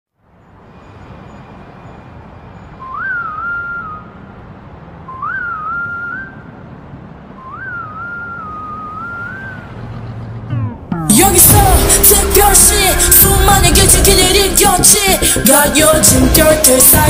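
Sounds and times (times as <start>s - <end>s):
person whistling a tune: 2.8s - 4.2s, 5.1s - 6.4s, 7.4s - 9.6s
steady low rumble: 10.1s - 17.0s.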